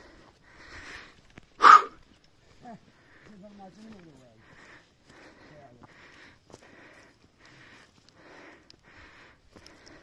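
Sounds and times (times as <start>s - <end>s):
man breathing hard: 0.0s - 2.0s, 4.4s - 10.0s.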